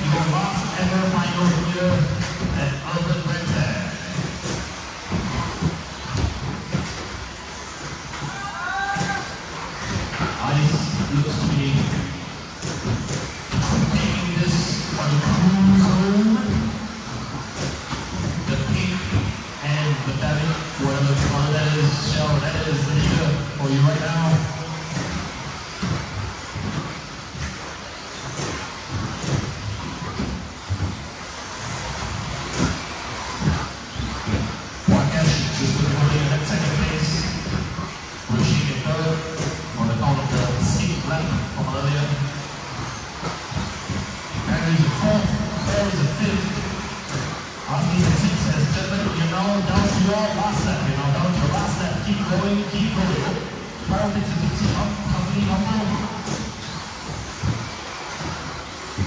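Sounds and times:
cars knocking on track: 0.0 - 59.0.

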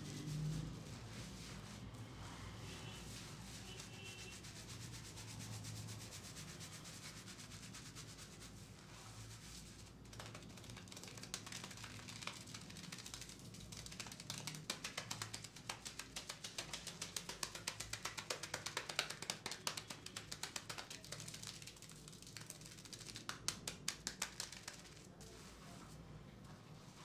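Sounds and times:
fingers scrubbing lathered scalp: 0.0 - 25.9.

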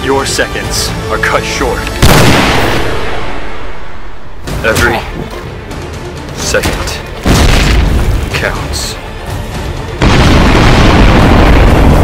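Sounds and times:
trailer music: 0.0 - 12.0.

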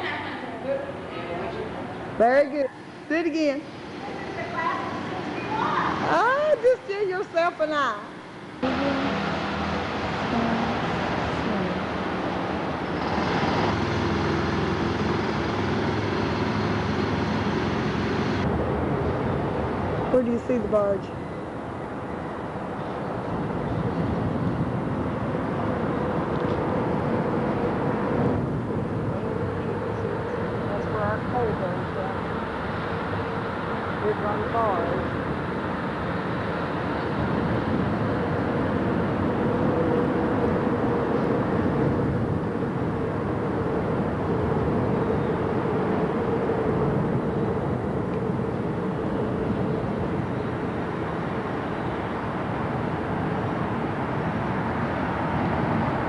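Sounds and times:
boat engine humming: 0.0 - 56.0
indistinct voices: 8.6 - 9.4, 10.3 - 12.0
wind noise: 8.6 - 56.0.

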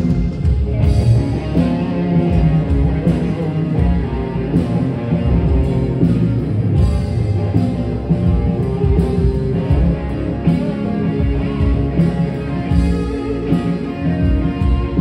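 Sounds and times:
electric guitar: 0.0 - 15.0
live rock band playing: 0.0 - 15.0.

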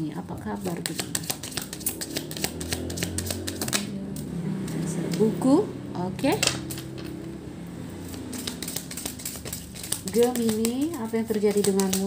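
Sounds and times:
cards shuffled by hand: 0.6 - 3.9, 8.0 - 12.0.

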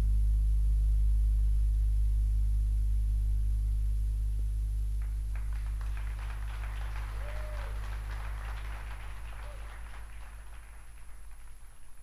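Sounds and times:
low sustained note: 0.0 - 11.8
scattered applause: 5.0 - 12.0
voices: 5.4 - 11.8.

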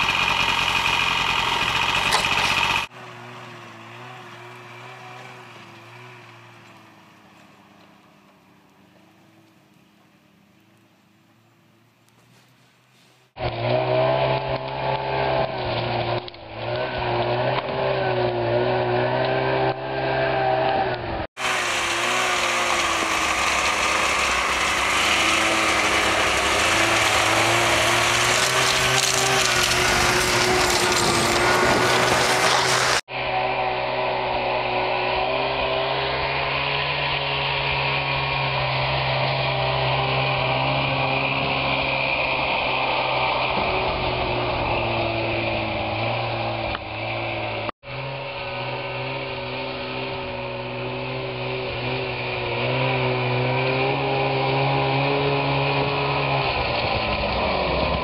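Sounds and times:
snowmobile engine running: 0.0 - 9.7, 13.3 - 58.0.

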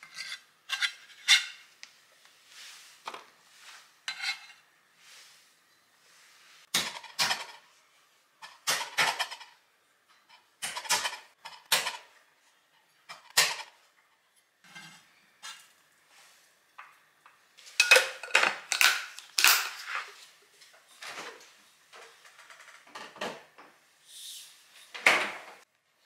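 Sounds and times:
knife scraping into metal tray: 4.1 - 4.6.

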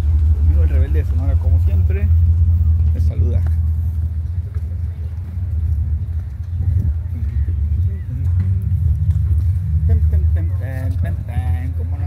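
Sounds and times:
motorcycle running: 0.0 - 12.0
wind buffeting microphone: 0.0 - 12.0.

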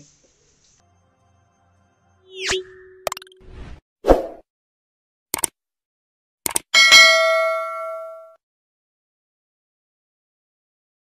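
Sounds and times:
bell-like ding: 6.8 - 8.4.

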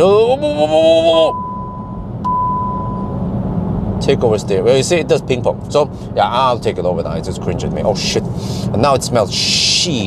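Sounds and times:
high warning beep: 1.2 - 3.2.

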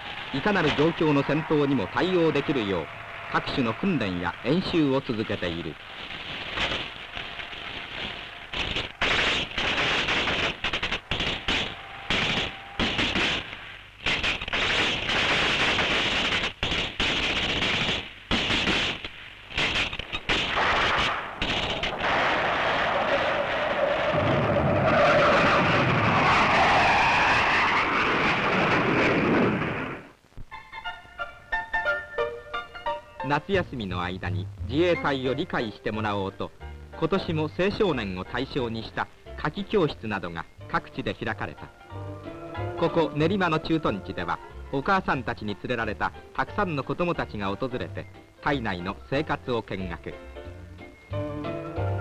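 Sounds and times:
rapid gunshots crackling: 4.4 - 23.7
gunfire bursts: 6.3 - 22.8.

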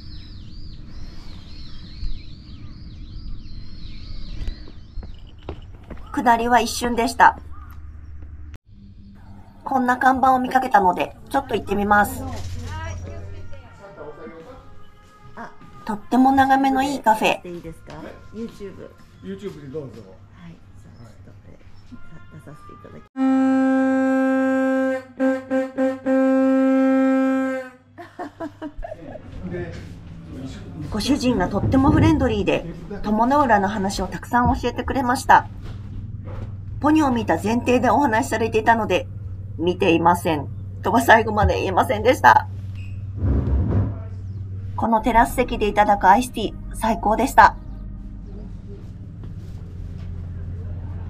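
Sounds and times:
songbirds whistling: 0.0 - 6.2
bellows horn reedy note: 23.2 - 28.0
low steady rumble: 28.6 - 51.0.

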